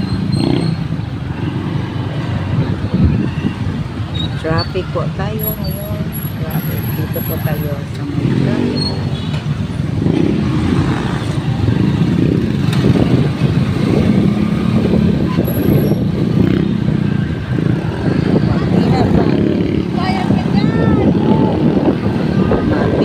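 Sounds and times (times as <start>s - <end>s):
road and traffic noise: 0.0s - 23.0s.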